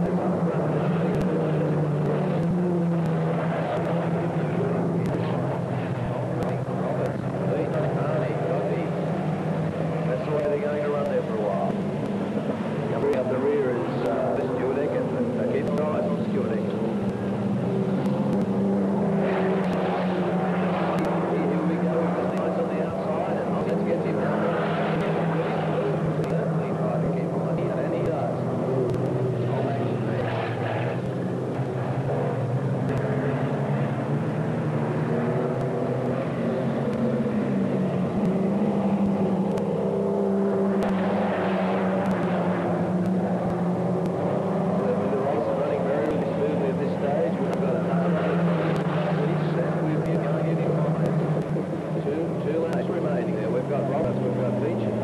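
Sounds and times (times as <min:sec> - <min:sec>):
race car engines droning: 0:00.0 - 0:55.0.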